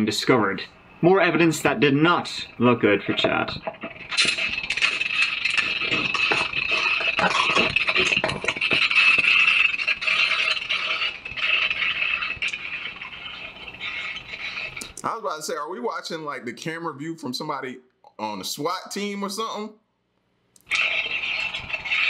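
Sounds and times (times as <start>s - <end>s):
scrapes and clicks: 3.2s - 15.0s.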